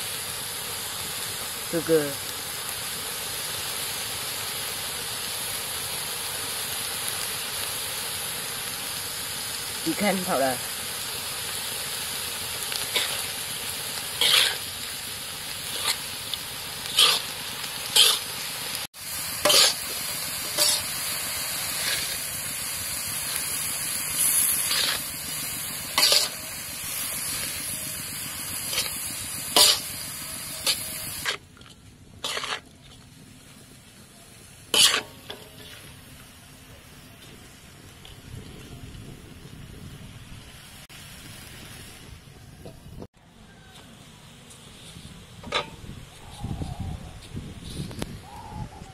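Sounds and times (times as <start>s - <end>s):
insects sizzling in a wok: 0.0s - 31.4s, 32.2s - 32.6s, 33.5s - 48.6s
metal spatula scraping a pan: 12.7s - 14.9s, 15.6s - 16.2s, 16.8s - 18.5s, 19.4s - 22.3s, 24.2s - 27.8s, 28.6s - 31.4s, 32.2s - 32.7s, 34.7s - 35.9s.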